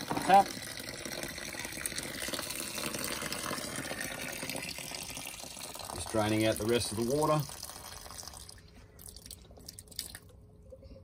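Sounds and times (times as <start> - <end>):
water trickling from tap: 0.3 - 10.3.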